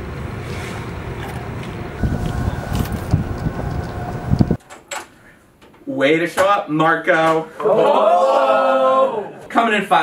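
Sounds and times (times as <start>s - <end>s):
wind buffeting microphone: 2.0s - 4.6s.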